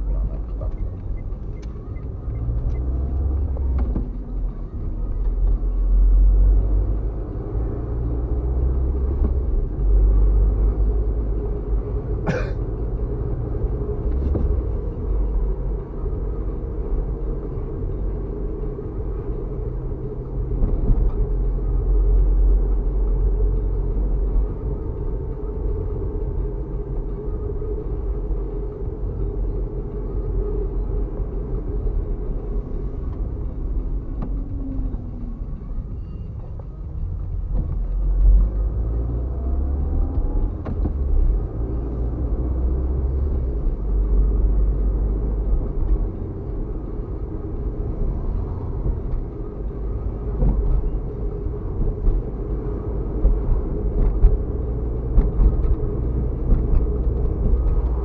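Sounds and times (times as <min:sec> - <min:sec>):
car engine and tyres rumbling: 0:00.0 - 0:58.0.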